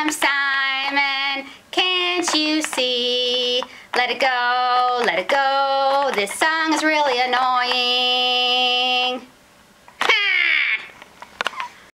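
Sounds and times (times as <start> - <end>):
person singing in dummy voice: 0.0 - 9.3.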